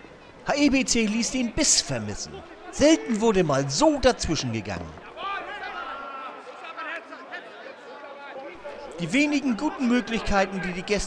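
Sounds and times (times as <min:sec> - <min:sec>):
voices shouting outdoors: 0:00.0 - 0:11.0.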